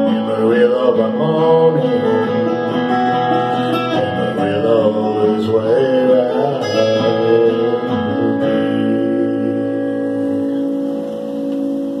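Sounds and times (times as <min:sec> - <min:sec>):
guitar chord ringing: 0:00.0 - 0:12.0.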